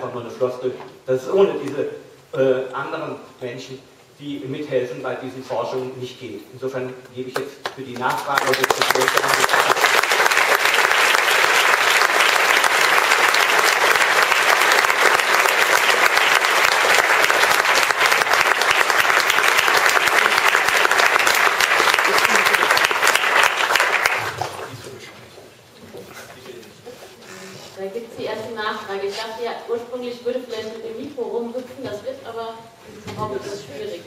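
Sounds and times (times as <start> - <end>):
audience applause: 8.0 - 24.9.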